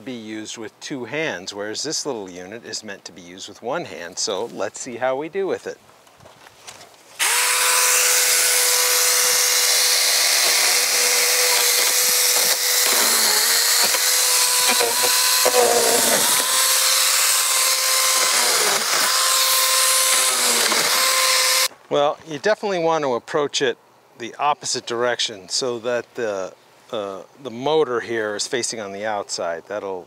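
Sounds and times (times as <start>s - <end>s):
electric chainsaw running: 7.2s - 21.7s.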